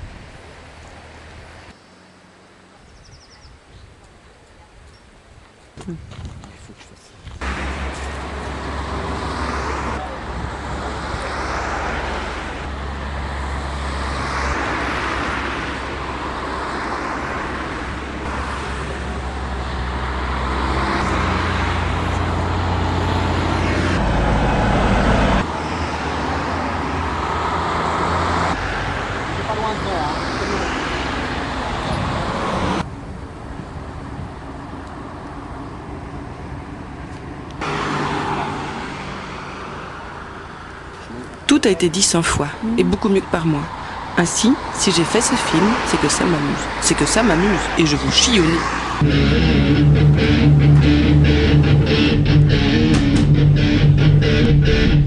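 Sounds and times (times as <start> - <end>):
low traffic rumble: 0.0 - 55.0
cars swishing past: 7.4 - 55.0
heavy lorry passing: 7.4 - 55.0.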